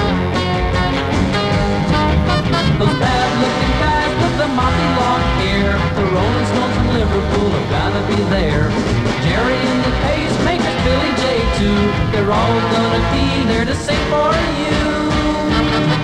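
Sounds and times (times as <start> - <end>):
rock and roll band playing: 0.0 - 16.0
person singing: 2.4 - 16.0.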